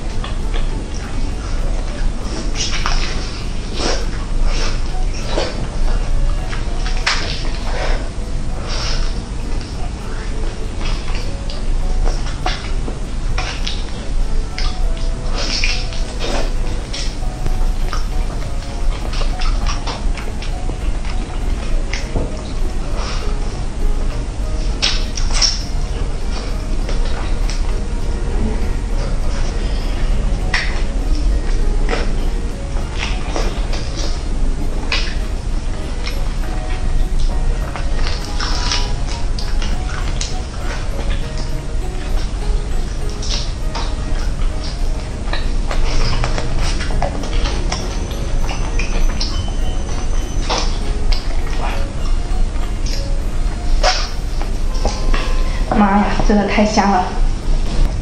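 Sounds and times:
background music: 0:00.0 - 0:58.0
chewing: 0:00.1 - 0:55.7.

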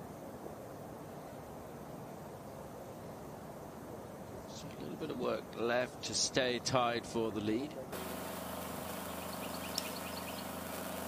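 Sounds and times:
steady outdoor hum: 0:00.0 - 0:11.0
high bird chirps: 0:09.0 - 0:10.8.

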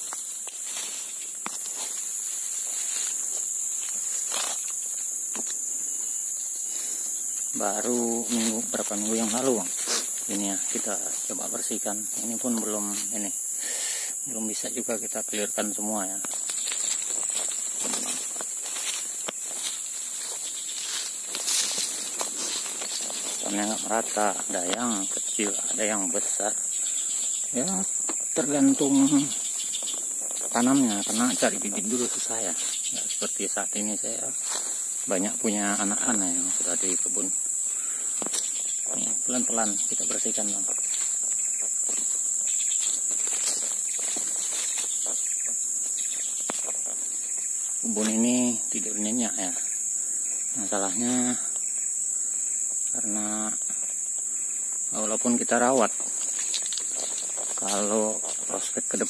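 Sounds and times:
brushing through undergrowth: 0:00.0 - 0:05.7, 0:06.8 - 0:11.5, 0:16.3 - 0:25.4, 0:38.2 - 0:48.2, 0:55.8 - 0:58.8
footsteps on dry leaves: 0:00.0 - 0:13.2, 0:16.0 - 0:33.2, 0:33.8 - 0:49.1, 0:54.8 - 0:59.0
insects droning: 0:00.0 - 0:59.0.

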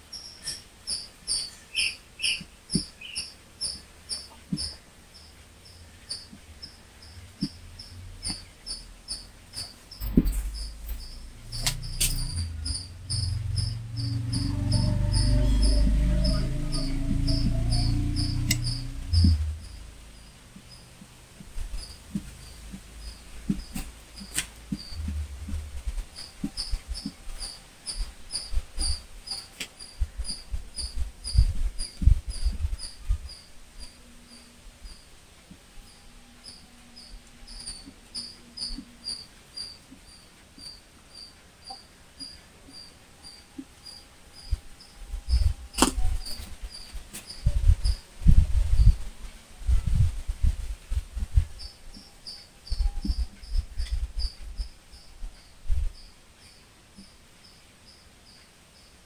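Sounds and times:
sharp click: 0:09.6 - 0:12.8, 0:18.4 - 0:18.8, 0:45.7 - 0:46.5
dull low thumps: 0:09.9 - 0:24.0, 0:24.6 - 0:27.1, 0:44.4 - 0:46.3, 0:47.3 - 0:51.7.

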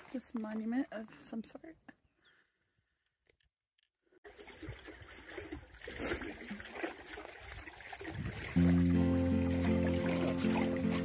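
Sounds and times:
water flowing in concrete channel: 0:00.0 - 0:01.6, 0:04.2 - 0:11.0.

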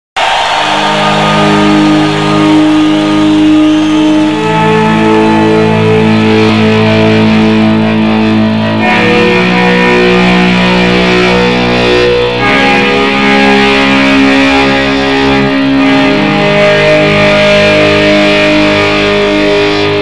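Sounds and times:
distorted electric guitar: 0:00.2 - 0:20.0.

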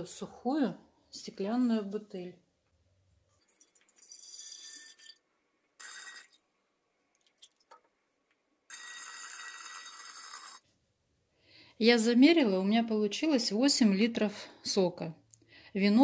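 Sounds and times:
liquid pouring into glass carboy: 0:03.4 - 0:06.5, 0:07.2 - 0:07.9, 0:08.7 - 0:10.6.

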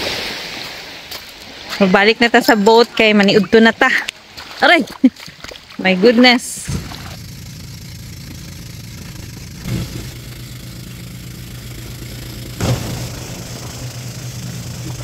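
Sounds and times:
boat engine humming: 0:01.4 - 0:15.0.

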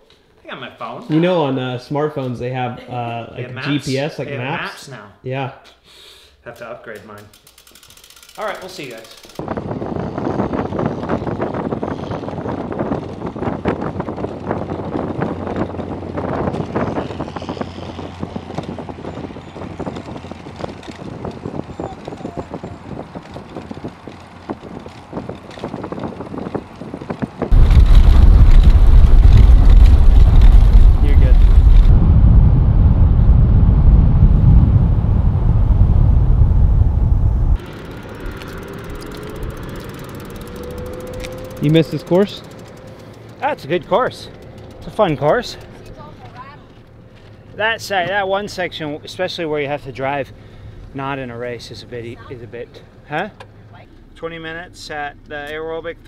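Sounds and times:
road noise: 0:07.3 - 0:56.0
wind rushing over microphone: 0:09.4 - 0:42.4
low wind rumble: 0:09.4 - 0:56.0.

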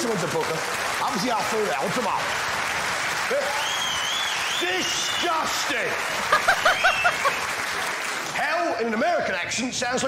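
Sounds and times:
audience applauding: 0:00.0 - 0:08.9
audience laughing: 0:06.0 - 0:07.5
woman laughing: 0:06.3 - 0:07.4.

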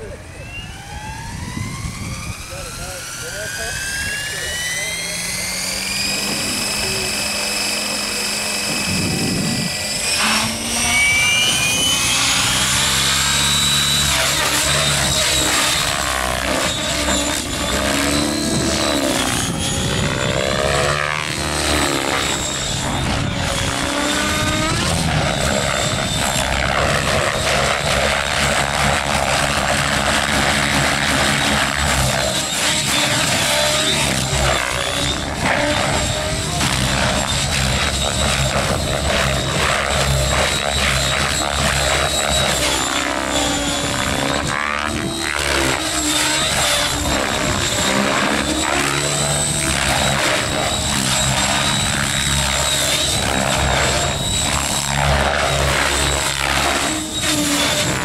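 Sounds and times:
model helicopter motor whine: 0:00.0 - 0:58.0.

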